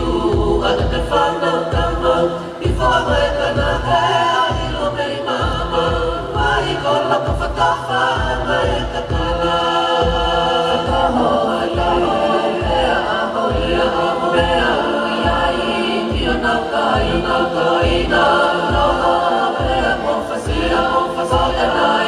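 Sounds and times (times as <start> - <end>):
choir singing in harmony: 0.0 - 22.0
steady low beat: 0.0 - 22.0.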